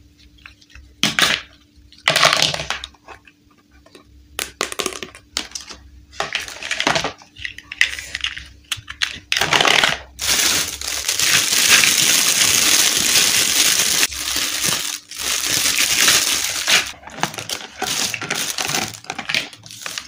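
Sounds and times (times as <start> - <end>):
plastic bag crinkling: 9.4 - 20.0.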